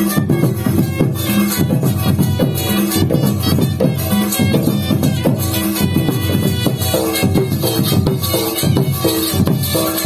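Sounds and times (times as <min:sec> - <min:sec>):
hand-played barrel drum: 0:00.0 - 0:10.0.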